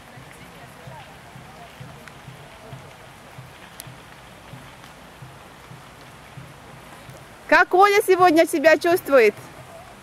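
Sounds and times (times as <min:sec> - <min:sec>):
soft low bumps: 0:00.0 - 0:10.0
steady outdoor hiss: 0:00.0 - 0:10.0
faint ticks: 0:01.8 - 0:07.3.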